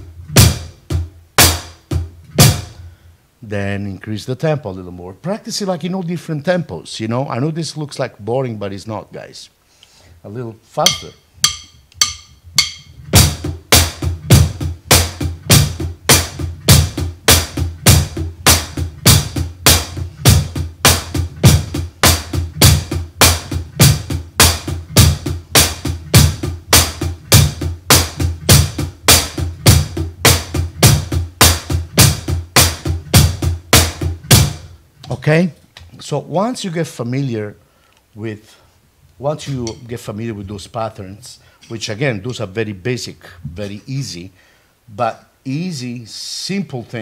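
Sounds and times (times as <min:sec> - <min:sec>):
drum kit groove: 0:00.0 - 0:03.0, 0:10.3 - 0:36.2, 0:39.2 - 0:42.6.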